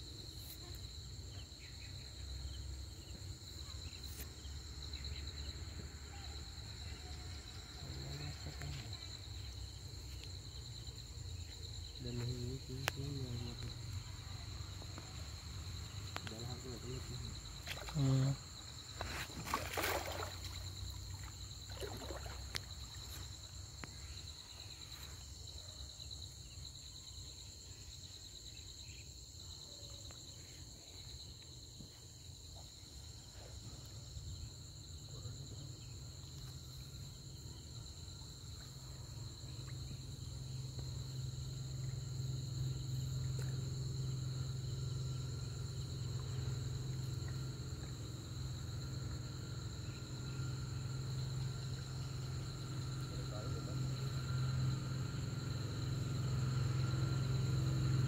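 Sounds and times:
insects trilling: 0:00.0 - 0:58.0.

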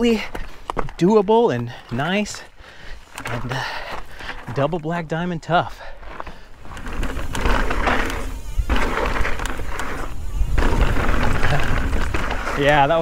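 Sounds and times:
bike tyre rumble on dirt: 0:00.0 - 0:13.0
freewheeling hub buzz: 0:06.6 - 0:13.0
wind noise on camera: 0:06.6 - 0:13.0.

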